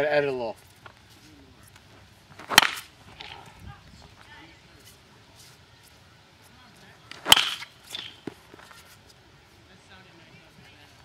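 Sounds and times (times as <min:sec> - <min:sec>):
baseball bat cracking ball: 0:02.4 - 0:03.4, 0:07.1 - 0:08.5.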